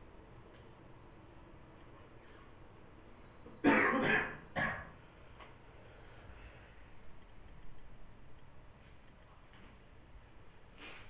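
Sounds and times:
person coughing: 3.6 - 4.9.

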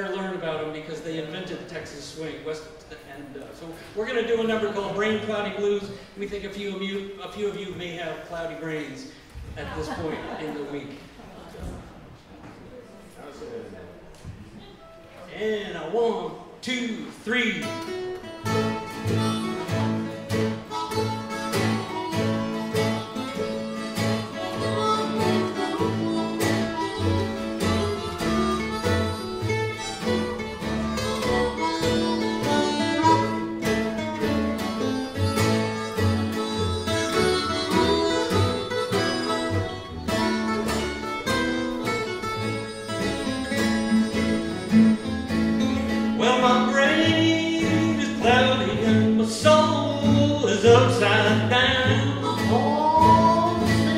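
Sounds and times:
mandolin: 17.4 - 53.9
strummed acoustic guitars: 17.4 - 53.9
harmonica lead: 17.6 - 53.9
upright bass: 18.4 - 53.9.

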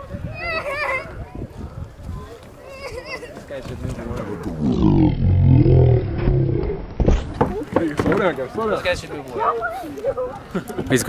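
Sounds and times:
bison bellowing: 4.4 - 6.8.

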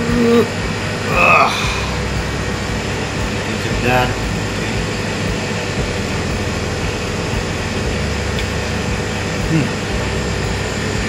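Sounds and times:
person humming: 0.0 - 2.2, 9.4 - 10.1
air conditioning hiss and hum: 0.0 - 11.0.

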